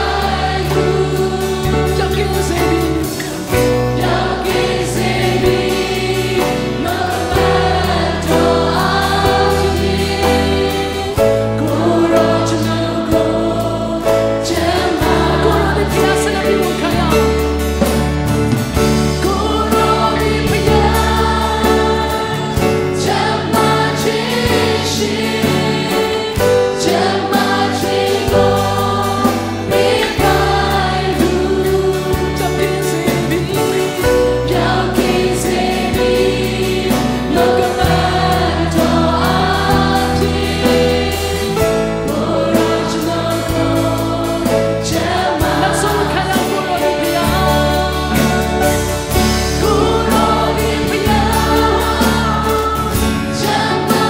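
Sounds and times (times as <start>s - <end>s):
acoustic guitar: 0.0s - 54.0s
congregation singing: 0.0s - 54.0s
keyboard: 0.0s - 54.0s
low bass line: 3.7s - 24.3s.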